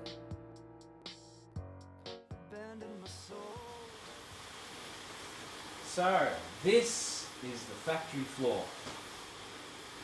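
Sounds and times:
factory hall background hiss: 3.3s - 10.0s.

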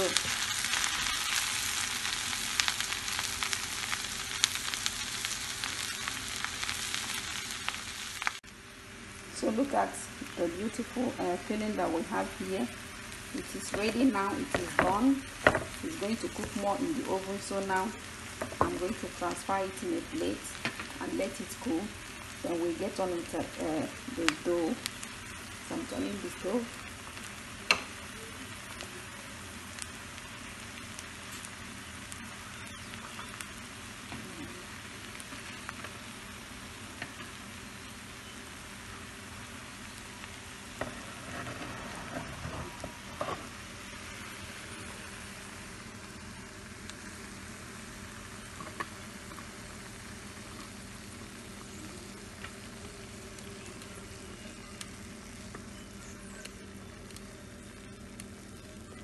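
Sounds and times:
filling sizzling in a frying pan: 0.0s - 59.0s
wooden spatula scraping a pan: 40.8s - 43.6s.

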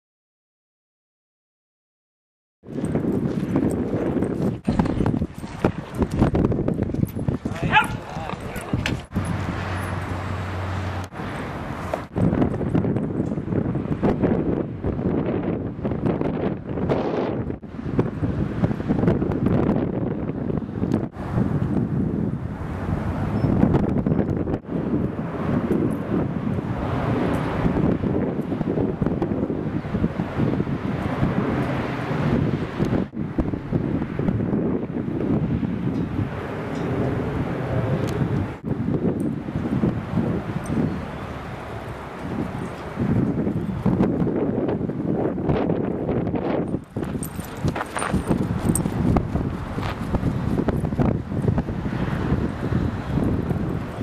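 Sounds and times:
wind buffeting microphone: 2.6s - 54.0s.

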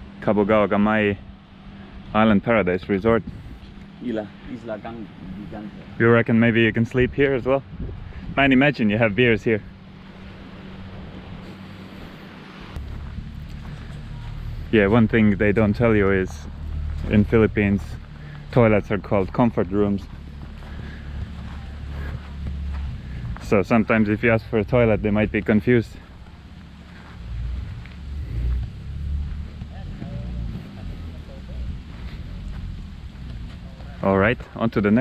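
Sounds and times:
outdoor background noise: 0.0s - 35.0s
wind buffeting microphone: 2.0s - 3.8s, 4.6s - 26.5s.

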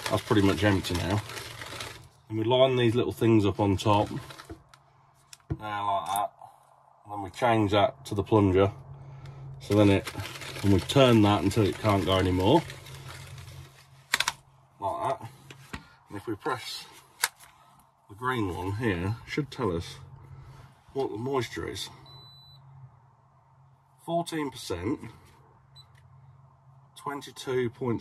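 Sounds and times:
faint high beep: 22.0s - 22.7s.

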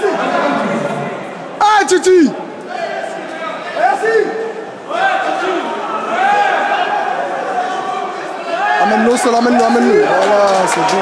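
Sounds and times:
crowd chatter: 0.0s - 11.0s
man shouting: 1.6s - 2.4s.

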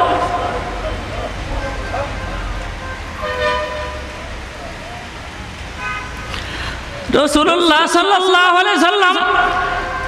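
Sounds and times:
horn-like toot: 1.6s - 4.1s.

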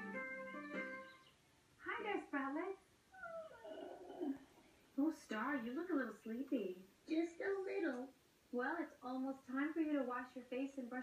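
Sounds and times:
soft low murmur: 3.1s - 5.0s.

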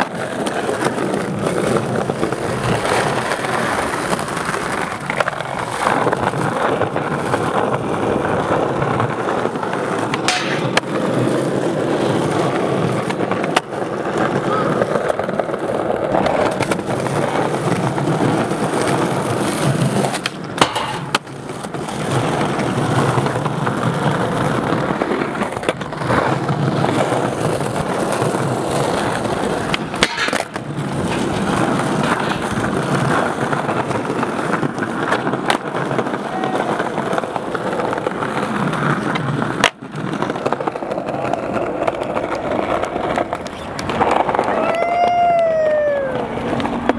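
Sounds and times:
skateboard clacks: 0.0s - 46.9s
skateboard wheels rolling on tiles: 0.0s - 46.9s.

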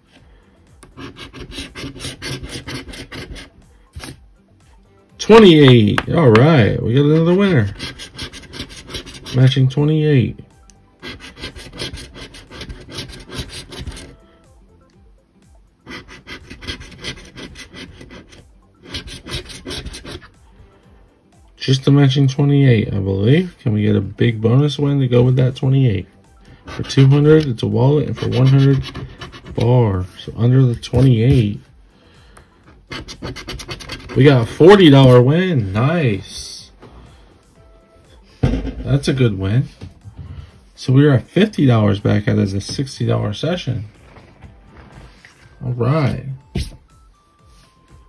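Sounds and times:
coin scraping lottery ticket: 1.0s - 3.5s, 7.2s - 9.6s, 11.0s - 14.2s, 15.9s - 20.3s, 26.7s - 29.7s, 32.9s - 35.2s.

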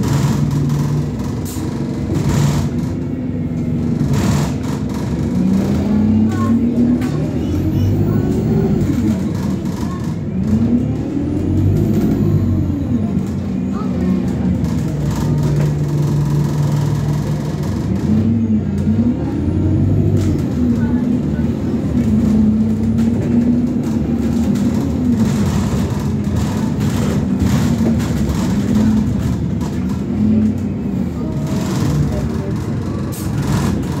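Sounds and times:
bus engine accelerating and slowing: 0.0s - 34.0s
road noise: 0.0s - 34.0s.

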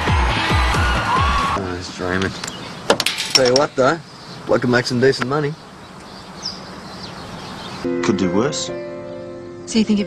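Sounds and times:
bird chirps: 2.2s - 10.0s
music with sustained notes: 6.9s - 10.0s.

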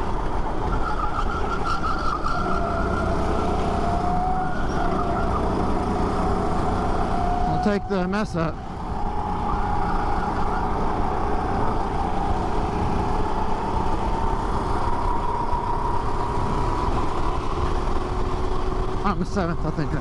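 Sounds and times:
go-kart engine running: 0.0s - 7.9s, 8.5s - 20.0s.

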